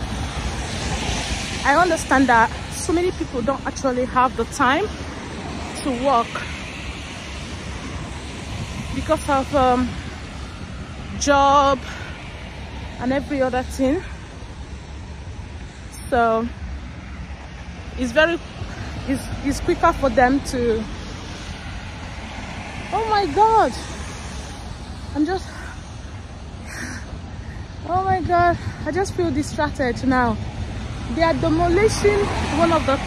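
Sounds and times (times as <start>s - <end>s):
wind blowing on a microphone: 0.0s - 14.4s, 26.2s - 33.0s
outdoor background rumble: 0.0s - 33.0s.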